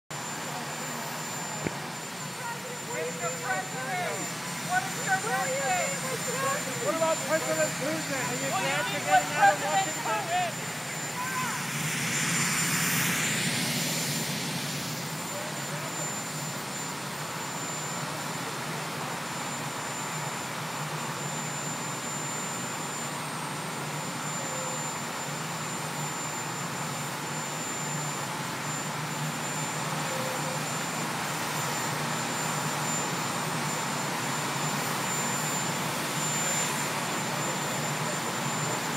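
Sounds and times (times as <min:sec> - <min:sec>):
helicopter turbine engines running: 0:00.1 - 0:38.9.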